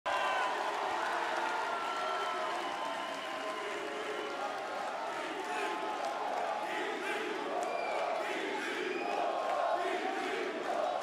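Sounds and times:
crowd cheering and applauding: 0.1 - 11.0.

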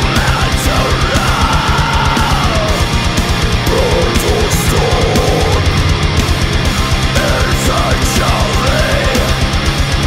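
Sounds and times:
fast low drum beats: 0.0 - 10.0
heavy metal band playing: 0.0 - 10.0.

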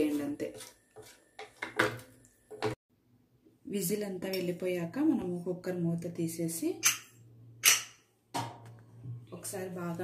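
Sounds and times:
spatula scraping pot: 0.0 - 2.8.

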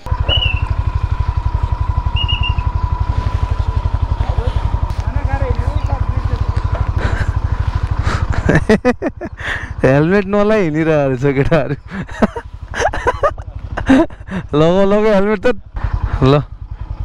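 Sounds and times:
motorcycle engine idling: 0.0 - 17.0.

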